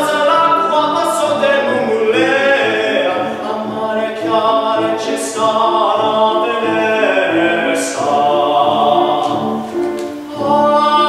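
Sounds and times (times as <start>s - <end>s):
grand piano accompaniment: 0.0s - 11.0s
man singing opera: 0.0s - 11.0s.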